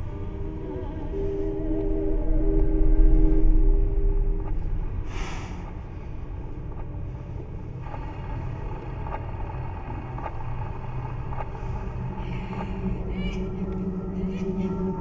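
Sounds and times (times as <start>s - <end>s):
low rumbling drone: 0.0s - 15.0s.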